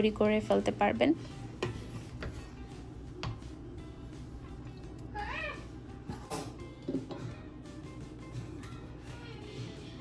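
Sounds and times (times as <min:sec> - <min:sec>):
meow-like call: 0:05.1 - 0:05.7.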